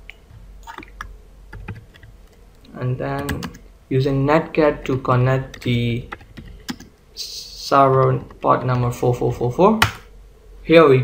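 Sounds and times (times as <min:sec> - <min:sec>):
computer mouse and keyboard clicks: 0:05.6 - 0:06.9.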